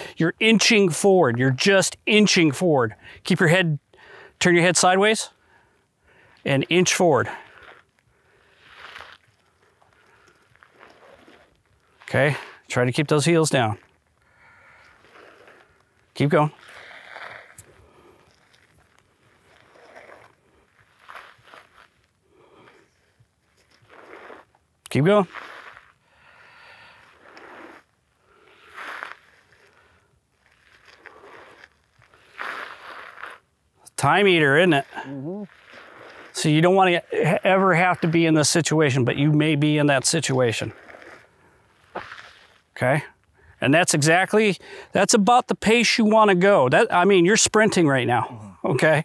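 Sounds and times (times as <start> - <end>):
body dragging over dirt: 0.0 - 45.4.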